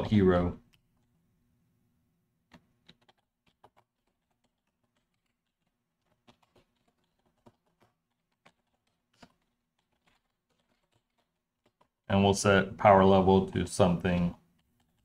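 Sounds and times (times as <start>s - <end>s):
computer keyboard typing: 2.5s - 12.2s, 13.6s - 15.0s.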